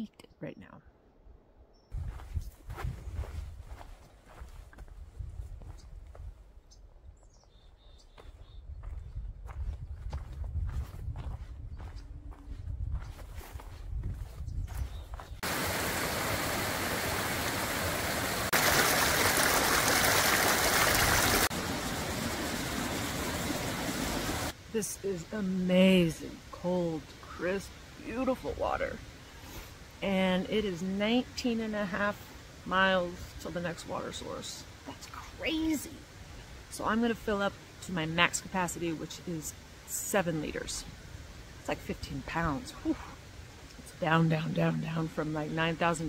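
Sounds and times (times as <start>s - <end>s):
wind rumbling on microphone: 1.9s - 7.1s, 8.3s - 15.5s
footsteps on rocky trail: 2.0s - 6.3s, 8.1s - 15.5s
stream rushing over boulders: 15.4s - 24.6s.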